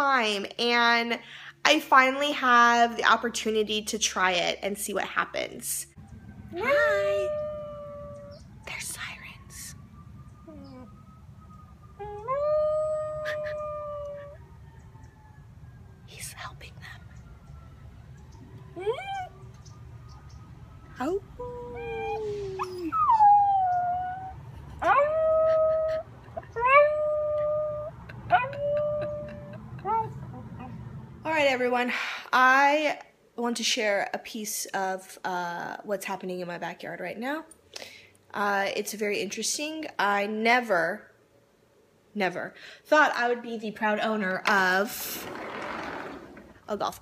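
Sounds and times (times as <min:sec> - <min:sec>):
dog howling: 0:06.5 - 0:08.5, 0:11.9 - 0:14.5, 0:18.4 - 0:19.5, 0:21.1 - 0:30.9.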